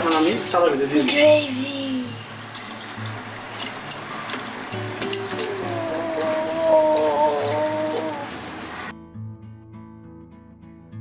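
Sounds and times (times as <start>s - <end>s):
steady hiss: 0.0s - 8.9s
background music: 0.0s - 10.3s.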